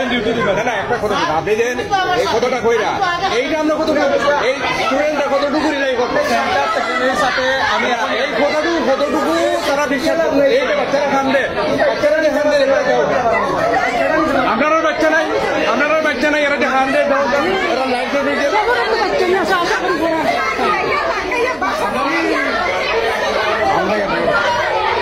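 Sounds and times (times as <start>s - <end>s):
people arguing loudly: 0.0s - 25.0s.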